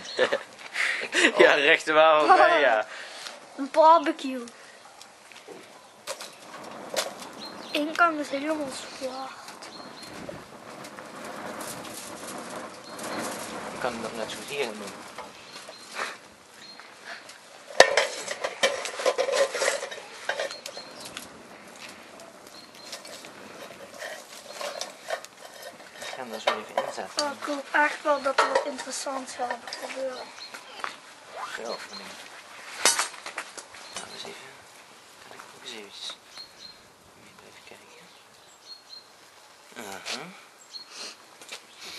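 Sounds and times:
rushing hiss of flames: 0.0s - 41.9s
wood fire crackling: 0.0s - 41.9s
small snaps of fire: 3.2s - 27.7s, 28.4s - 38.6s, 41.1s - 41.9s.

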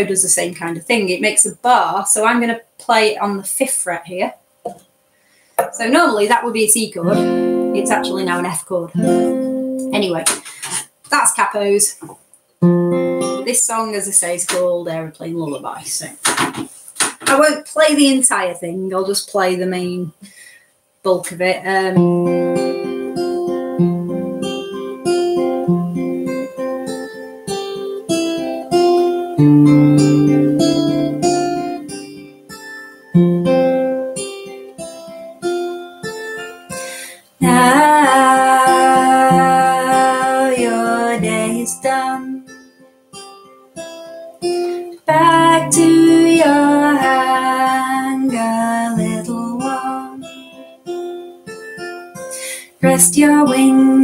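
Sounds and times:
acoustic guitar picking: 5.6s - 11.3s, 12.1s - 14.7s, 21.9s - 54.0s
woman singing: 6.8s - 9.2s, 37.4s - 42.5s, 45.1s - 50.4s, 52.8s - 54.0s.

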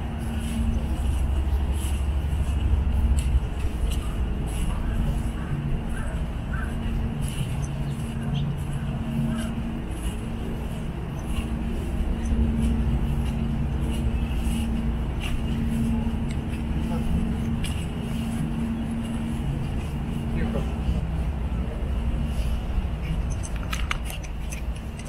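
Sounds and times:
people's voices: 0.0s - 25.0s
traffic hum: 0.0s - 25.0s.

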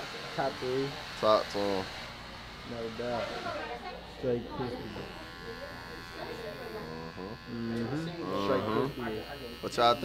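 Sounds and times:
hair clippers buzzing: 0.0s - 10.0s
faint voices: 3.2s - 10.0s.

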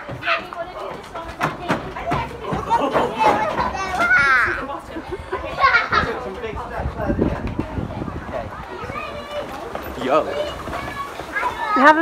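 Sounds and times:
young children playing: 0.0s - 12.0s.

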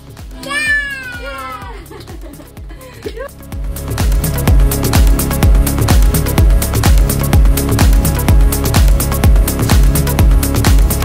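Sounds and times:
background music with beat: 0.0s - 11.0s
toddler squealing: 0.4s - 1.7s.

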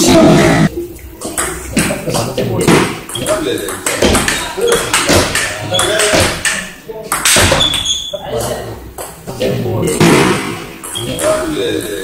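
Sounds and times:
ping pong ball on table: 1.2s - 7.9s
people talking: 1.3s - 12.0s
ping pong ball on rackets: 2.7s - 7.9s.

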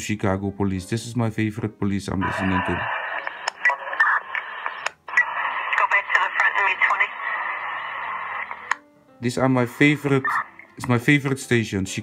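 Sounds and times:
police radio voices: 2.2s - 7.3s, 10.2s - 10.6s
radio static hiss: 2.2s - 8.8s, 10.1s - 10.6s.

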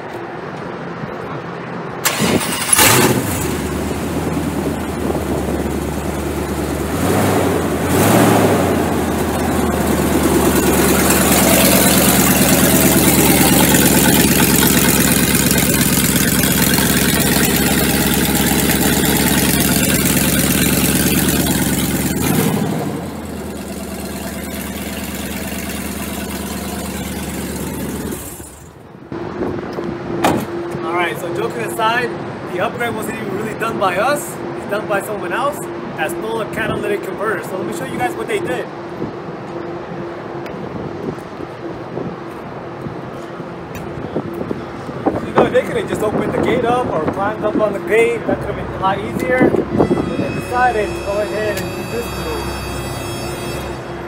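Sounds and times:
loud raw engine running: 2.0s - 32.4s, 43.6s - 54.0s
wind on microphone: 3.8s - 9.8s, 40.5s - 48.5s, 49.2s - 50.8s.

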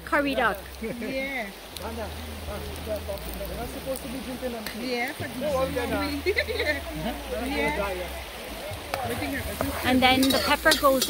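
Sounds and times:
people talking: 0.0s - 11.0s
shallow river rushing: 0.0s - 11.0s.

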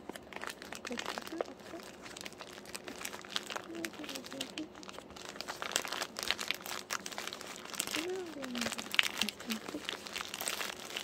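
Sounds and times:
packaging crinkling and rustling: 0.0s - 11.0s.

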